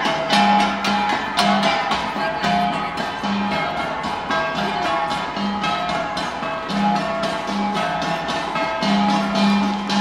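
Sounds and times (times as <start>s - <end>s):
bronze gongs ringing: 0.0s - 10.0s.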